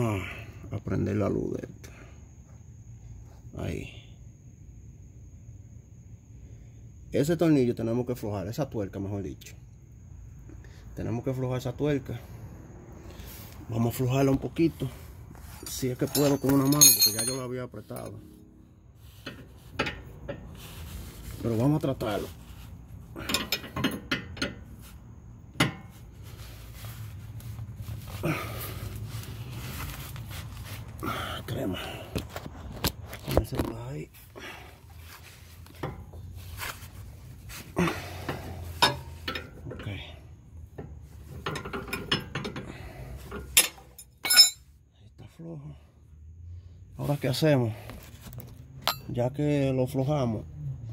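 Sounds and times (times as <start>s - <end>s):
wrench clinking against nut: 15.7s - 18.2s, 48.8s - 49.1s.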